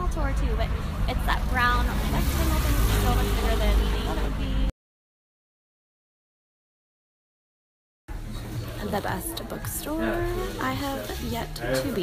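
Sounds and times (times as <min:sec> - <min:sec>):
boat engine rumble: 0:00.0 - 0:04.7
indistinct voices: 0:00.0 - 0:04.7, 0:08.1 - 0:12.0.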